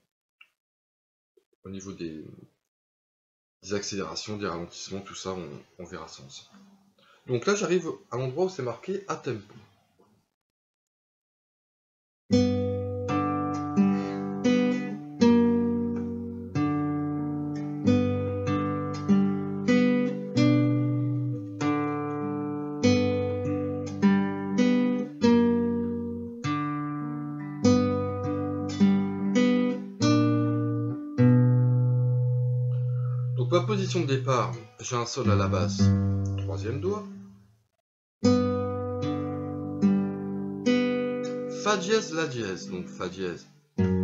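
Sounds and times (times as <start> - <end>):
classical guitar fingerstyle: 12.3 - 37.4, 38.2 - 44.0.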